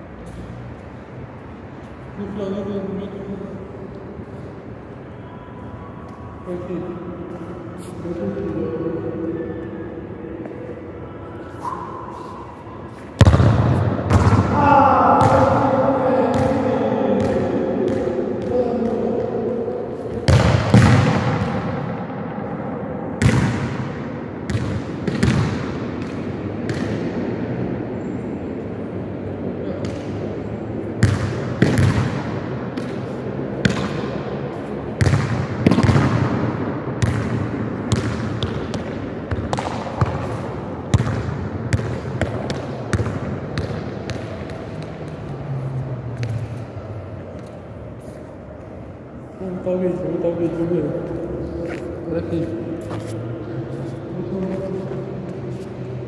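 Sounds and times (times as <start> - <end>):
raised voice echoing: 8.0 - 10.4, 14.3 - 23.0, 49.4 - 55.6
ball bouncing on indoor court: 13.0 - 22.3, 23.0 - 27.6, 29.7 - 46.6.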